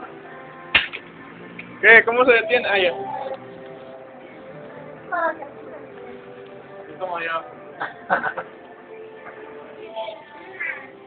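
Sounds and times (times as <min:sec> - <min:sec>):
sharp smack: 0:00.7 - 0:01.1
voice: 0:01.8 - 0:03.4.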